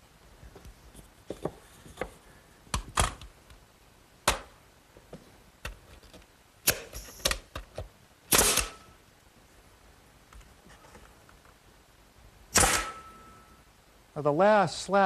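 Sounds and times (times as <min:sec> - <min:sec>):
nail gun firing into wood: 0:06.6 - 0:07.4, 0:08.3 - 0:08.8, 0:12.5 - 0:13.1.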